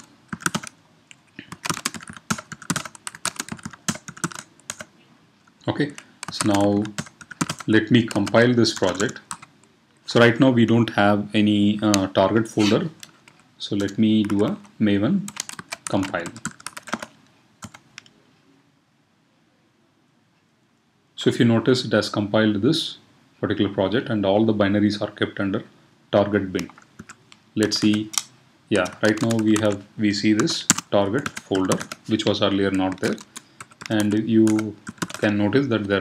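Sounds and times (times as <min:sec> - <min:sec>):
computer keyboard typing: 0:00.0 - 0:04.9, 0:05.9 - 0:09.5, 0:12.9 - 0:14.7, 0:15.3 - 0:18.1, 0:26.6 - 0:36.0
faint room hiss: 0:00.0 - 0:36.0.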